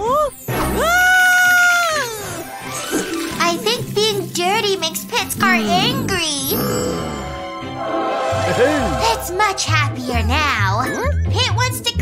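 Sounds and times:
background music: 0.0 - 12.0
cartoon baby babbling: 5.4 - 6.6.

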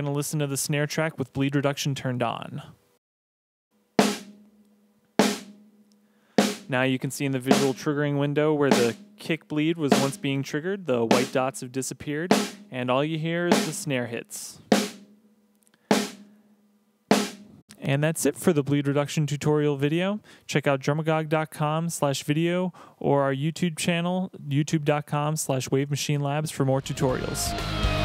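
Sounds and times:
snare drum hits: 4.0 - 4.4, 5.2 - 5.6, 6.4 - 6.8, 7.5 - 7.8, 8.7 - 9.0, 9.9 - 10.3, 11.1 - 11.4, 12.3 - 12.7, 13.5 - 13.8, 14.7 - 15.1, 15.9 - 16.2, 17.2 - 17.5.

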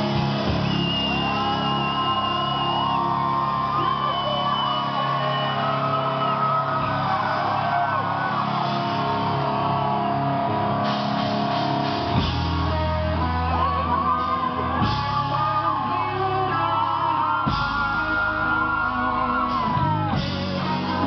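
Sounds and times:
heavy metal band playing: 0.0 - 21.0.

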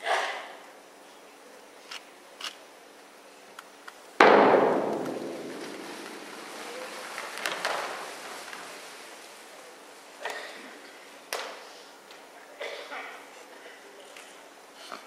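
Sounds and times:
bass drum mallet strike: 4.2 - 6.4.

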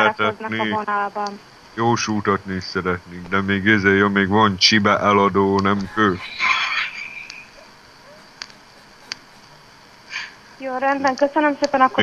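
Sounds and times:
telephone line hiss: 0.0 - 12.0.

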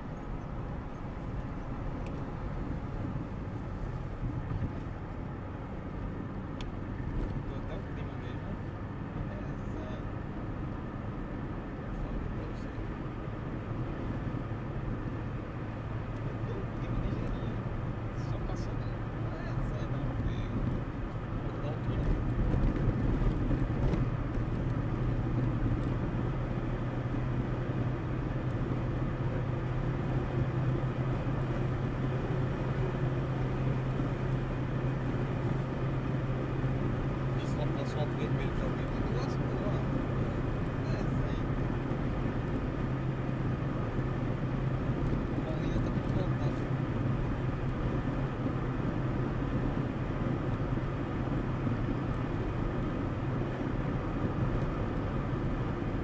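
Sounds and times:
car engine and tyre drone: 0.0 - 56.0.

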